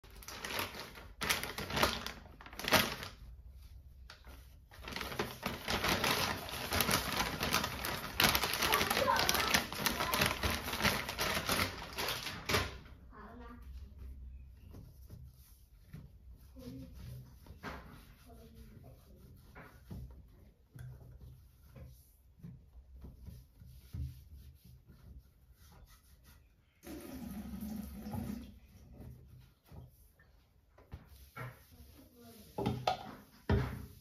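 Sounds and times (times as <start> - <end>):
plastic packet crinkling: 0.0 - 3.3, 4.8 - 12.8
faint handling sounds: 0.0 - 26.8.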